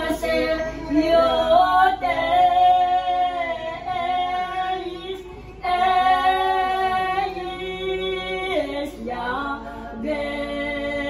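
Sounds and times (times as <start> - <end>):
women singing a hymn unaccompanied: 0.0 - 11.0.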